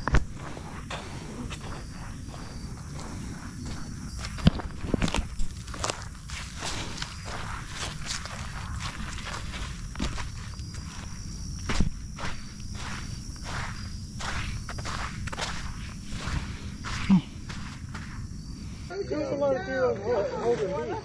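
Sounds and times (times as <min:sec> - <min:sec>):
steady low rumble: 0:00.0 - 0:18.9
footsteps crunching on sand and leaves: 0:00.0 - 0:20.7.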